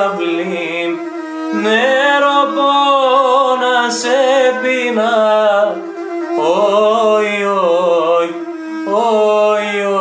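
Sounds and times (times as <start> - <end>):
held drone note: 0.0 - 10.0
man singing folk song: 0.0 - 10.0.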